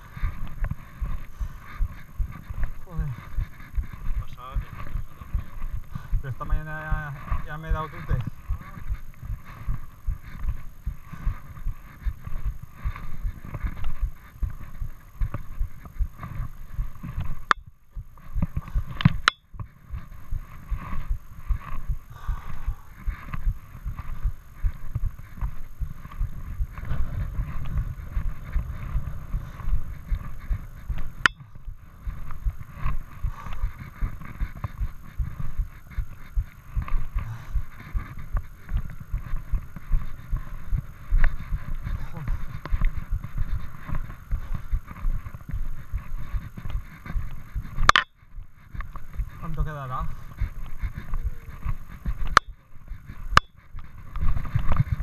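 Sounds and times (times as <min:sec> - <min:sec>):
camera thumping and rubbing: 0:00.0 - 0:55.0
footsteps: 0:00.0 - 0:55.0.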